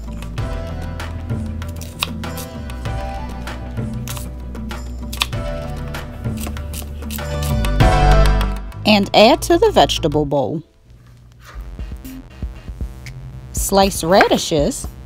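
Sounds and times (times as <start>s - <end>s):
background music with held tones: 0.0s - 15.0s.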